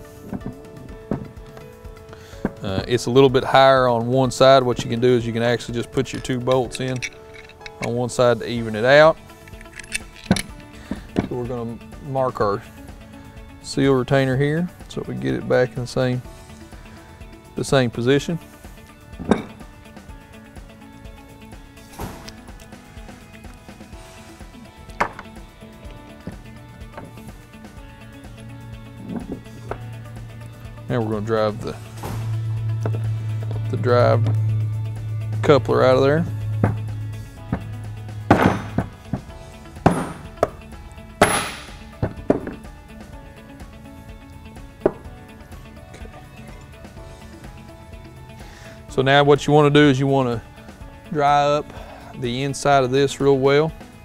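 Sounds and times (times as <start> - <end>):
background music: 0.0 - 54.0
metallic clinks of parts: 6.0 - 8.0, 9.4 - 10.6
metal knocks and clinks on workbench: 19.2 - 19.6, 25.0 - 25.4.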